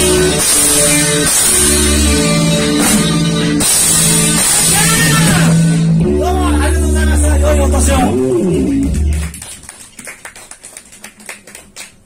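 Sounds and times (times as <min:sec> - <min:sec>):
scattered applause: 0:08.5 - 0:12.0.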